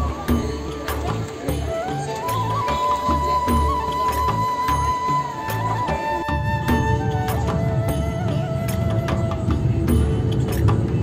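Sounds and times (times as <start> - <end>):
folk-style melody: 0.0 - 11.0
steady drum beat: 0.0 - 11.0.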